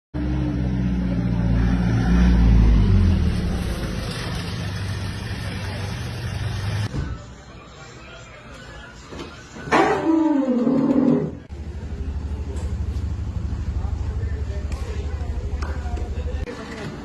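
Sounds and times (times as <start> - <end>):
van engine driving past: 0.2 - 6.9.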